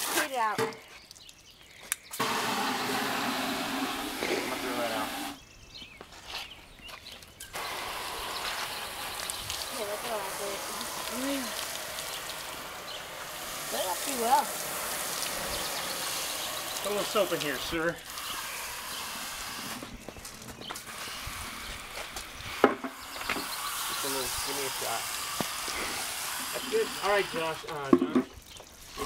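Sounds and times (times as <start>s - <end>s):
hose water splashing: 0.0s - 5.4s, 6.4s - 29.0s.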